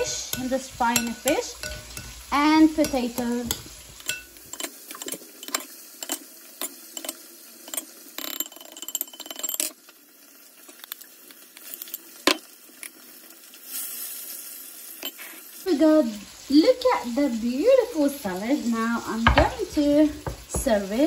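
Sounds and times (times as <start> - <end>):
metal spoon clinking on glass bowl: 0.0 - 6.2.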